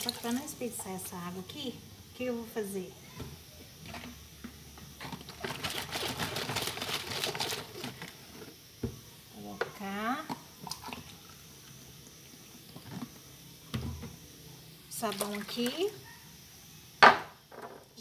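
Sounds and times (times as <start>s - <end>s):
water splashing and sloshing: 15.0s - 15.9s.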